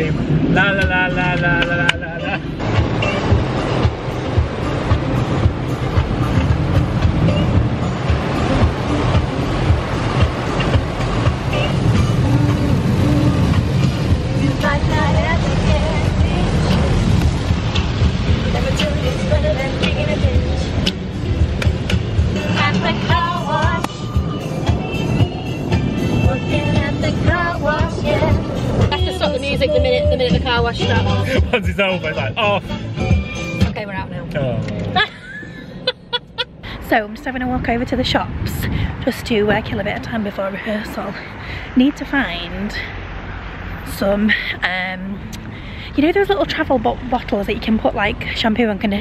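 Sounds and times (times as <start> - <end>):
car wash water spraying: 2.6 - 24.4
song with singing from phone: 18.4 - 21.0, 22.4 - 33.6.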